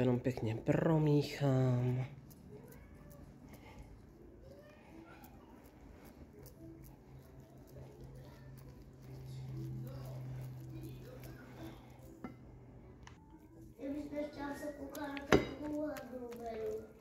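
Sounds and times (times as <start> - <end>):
wooden spoon stirring thick batter: 0.0 - 12.6, 13.4 - 17.0.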